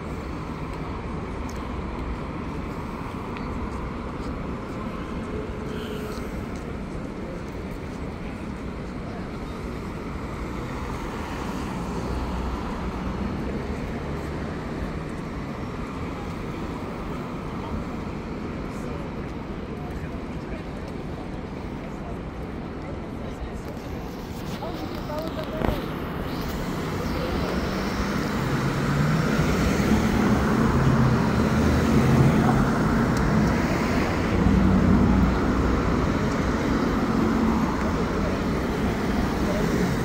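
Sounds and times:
indistinct voices of passers-by: 0.0 - 40.0
traffic hum of engines and tyres: 0.0 - 40.0.

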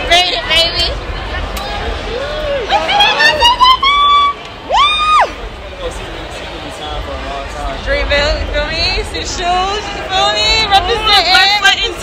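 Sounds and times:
woman squealing excitedly: 3.0 - 5.3.

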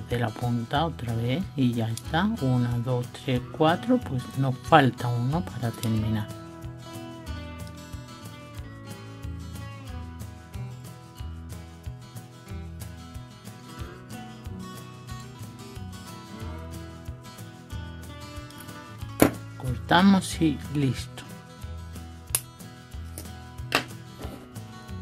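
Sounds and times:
instrumental music with held notes: 0.0 - 25.0.

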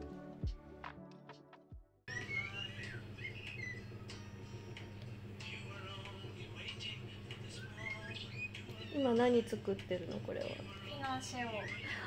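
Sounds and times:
small birds chirping: 2.1 - 4.2, 7.4 - 9.2
low room hum: 2.1 - 12.0.

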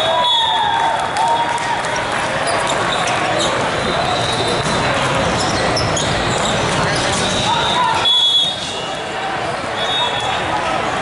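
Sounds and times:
players' voices in a hall: 0.0 - 11.0.

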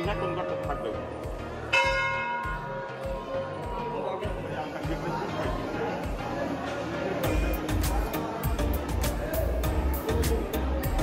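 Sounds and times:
temple bell ringing: 1.7 - 3.0.

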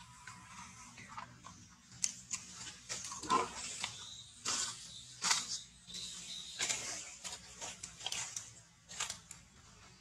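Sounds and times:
monkeys feeding clicks and rustles: 1.0 - 9.6.

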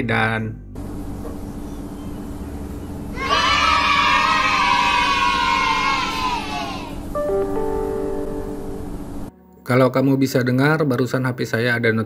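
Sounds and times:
children cheering and shouting: 3.1 - 7.1.

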